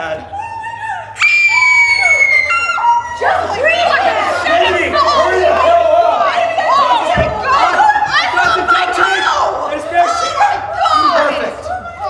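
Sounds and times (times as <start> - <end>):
group shouting and shrieking: 0.2 - 12.0
high-pitched scream: 0.3 - 4.3.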